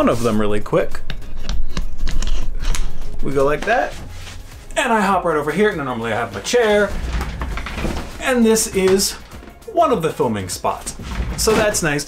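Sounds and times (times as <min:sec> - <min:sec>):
camera handling rubbing and bumps: 0:01.0 - 0:04.5.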